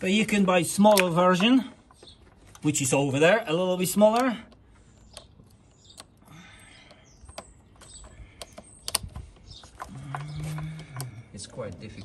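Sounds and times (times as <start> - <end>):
small clicks: 3.9 - 12.0.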